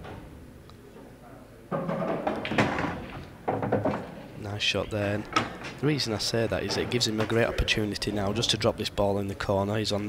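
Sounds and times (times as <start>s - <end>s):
pool balls clicking: 1.7s - 8.6s.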